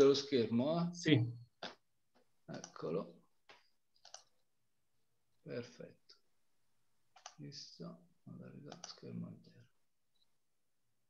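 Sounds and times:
sharp clicks: 3.5s - 4.3s, 7.2s - 7.4s
faint speech over video call: 5.4s - 6.2s, 7.3s - 9.7s.

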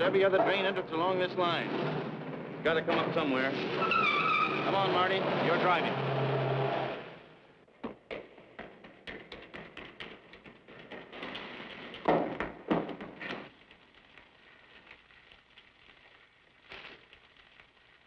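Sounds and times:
footsteps echoing in concrete tunnel: 7.7s - 13.5s.

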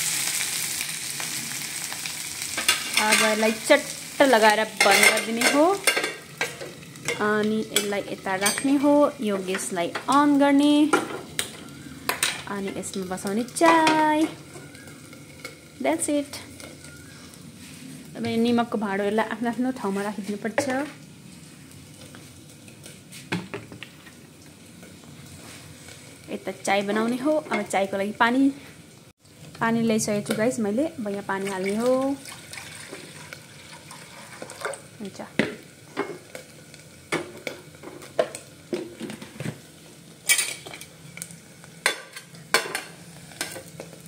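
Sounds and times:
gas burner hissing: 0.0s - 22.3s
water pouring into a saucepan: 32.0s - 34.7s.

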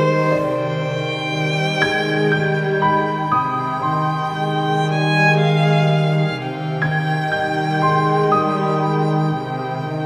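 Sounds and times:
violin melody: 0.0s - 10.0s.

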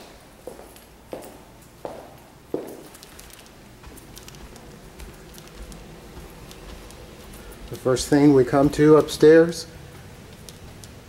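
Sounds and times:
footsteps on carpeted stairs: 0.0s - 9.2s.

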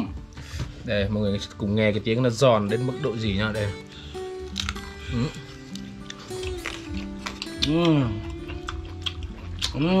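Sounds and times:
background music with held notes: 0.0s - 10.0s
crunchy skin being chewed: 4.4s - 10.0s.

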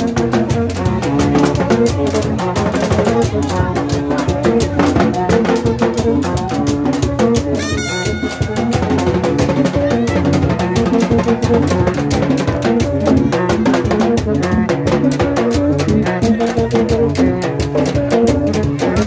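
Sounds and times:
drums and fast percussion: 0.0s - 19.0s
metal horns playing riff: 7.5s - 9.2s.

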